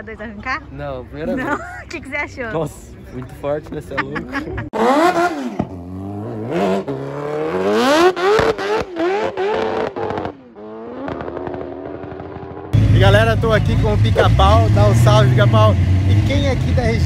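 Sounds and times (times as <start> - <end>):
motorcycle engine revving through upshifts: 4.7 - 17.0.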